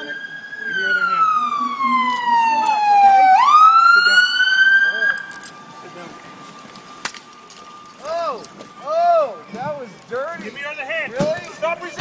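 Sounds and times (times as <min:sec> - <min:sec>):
police siren wailing: 0:00.0 - 0:12.0.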